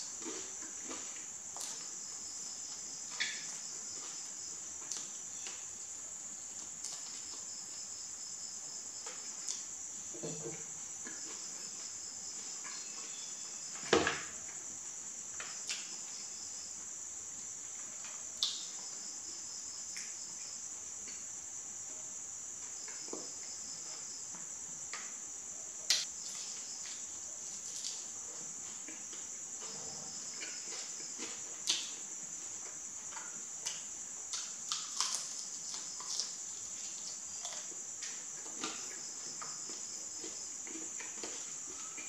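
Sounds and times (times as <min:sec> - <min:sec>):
crickets chirring: 0:00.0 - 0:42.0
faint pulsing insect call: 0:00.0 - 0:42.0.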